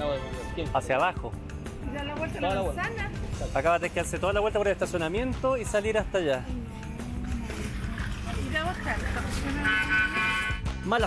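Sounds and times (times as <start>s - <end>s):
car horn steady tone: 9.3s - 10.7s.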